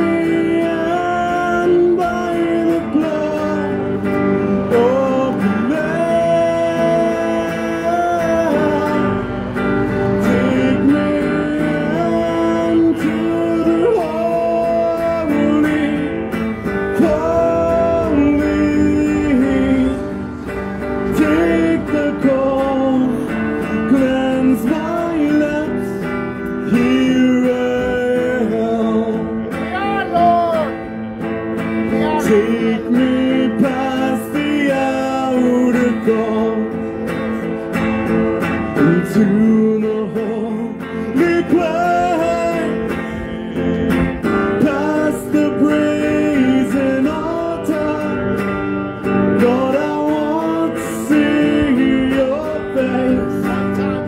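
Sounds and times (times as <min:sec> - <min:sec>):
person singing into microphone: 0:00.0 - 0:30.8, 0:31.9 - 0:36.8, 0:49.3 - 0:54.0
guitar: 0:00.0 - 0:54.0.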